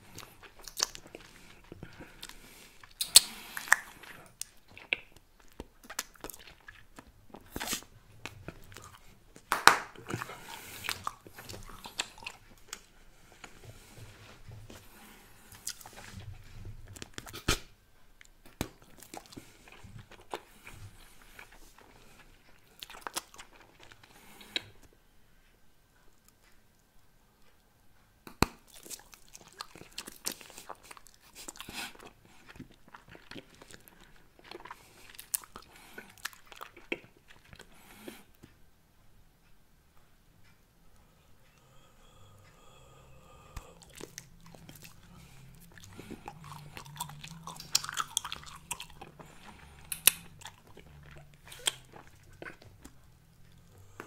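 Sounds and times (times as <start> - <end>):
wet gum chewing clicks and smacks: 0.1 - 13.9, 15.5 - 24.9, 28.2 - 38.6, 43.4 - 54.0.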